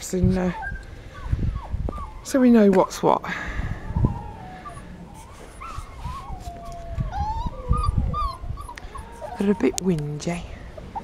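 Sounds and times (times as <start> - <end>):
puppy whimpering: 0.3 - 3.0, 3.8 - 11.0.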